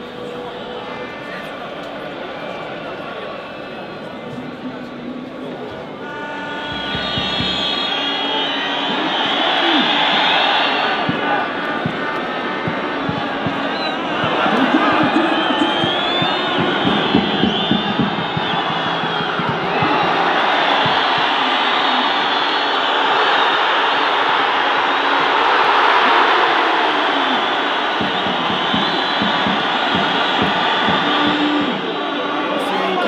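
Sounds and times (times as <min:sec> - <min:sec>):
stadium crowd noise: 0:00.0 - 0:33.0
high whistling: 0:06.2 - 0:11.4, 0:13.2 - 0:23.9.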